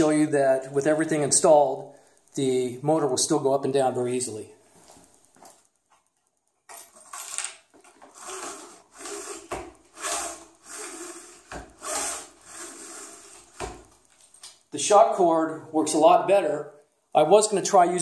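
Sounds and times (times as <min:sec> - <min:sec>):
cord rubbing through pulleys: 0:06.8 - 0:14.1.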